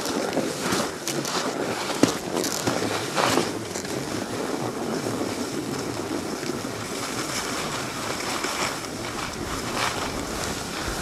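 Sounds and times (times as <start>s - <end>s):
snowblades scraping over snow: 0.0s - 11.0s
wind on microphone: 0.0s - 11.0s.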